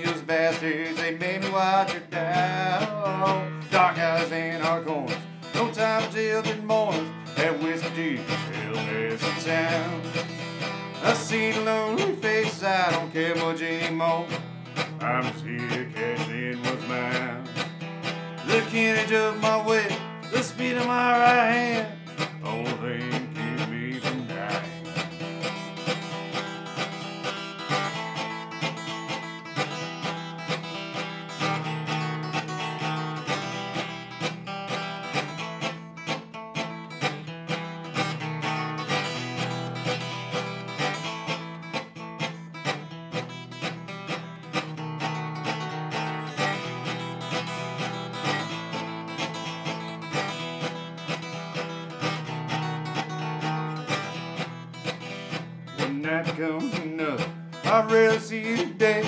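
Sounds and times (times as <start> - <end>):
acoustic guitar strummed and picked: 0.0 - 59.0.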